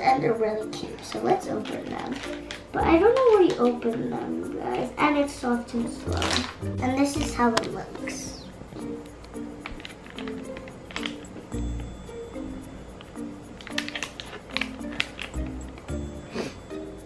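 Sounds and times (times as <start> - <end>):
bouncy background music: 0.0 - 17.0
foil packet crinkling: 0.6 - 4.0, 5.8 - 8.1, 9.6 - 11.4, 13.1 - 15.8.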